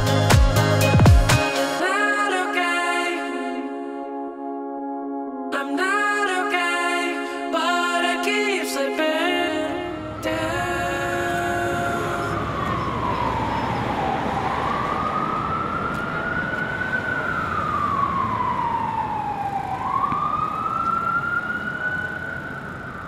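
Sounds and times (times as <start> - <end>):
siren wailing: 9.2 - 23.0
street noise rumble: 9.6 - 23.0.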